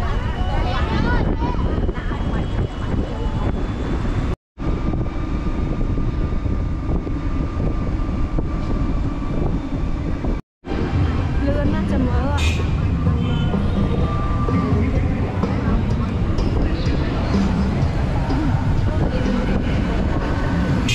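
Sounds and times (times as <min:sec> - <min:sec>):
wind and road noise: 0:00.0 - 0:20.9.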